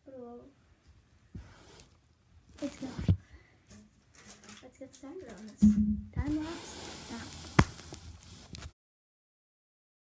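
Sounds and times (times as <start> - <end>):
sharp knock on phone: 5.6 - 6.1.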